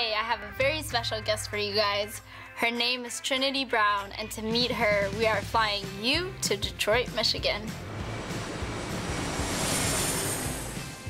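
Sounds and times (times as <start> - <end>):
background music: 0.0 - 11.0
jet airplane fly-by: 7.6 - 11.0.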